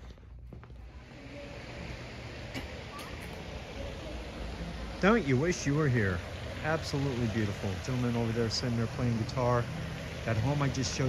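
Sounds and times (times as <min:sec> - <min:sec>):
open-air ambience hiss: 0:00.0 - 0:11.0.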